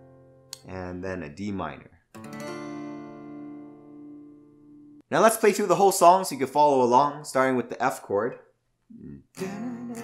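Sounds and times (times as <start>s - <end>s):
acoustic guitar chord ringing: 0.0s - 0.6s, 2.2s - 5.0s.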